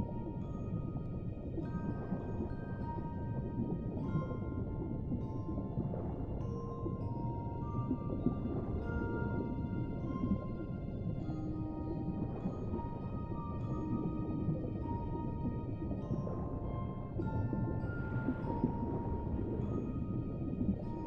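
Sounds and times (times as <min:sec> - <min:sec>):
muffled underwater rumble: 0:00.0 - 0:21.0
music box lullaby: 0:00.3 - 0:15.4, 0:16.0 - 0:21.0.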